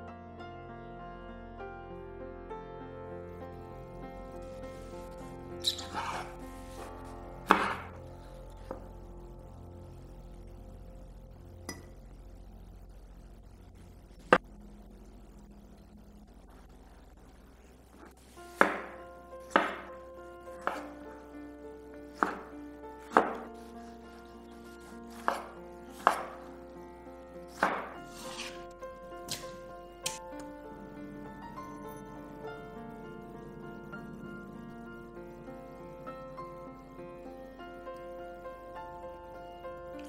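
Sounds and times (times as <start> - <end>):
background music: 0.0 - 40.0.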